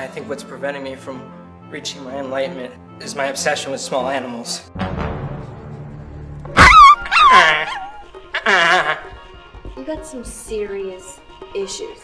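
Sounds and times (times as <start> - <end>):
small dog yelping: 6.6 - 8.8.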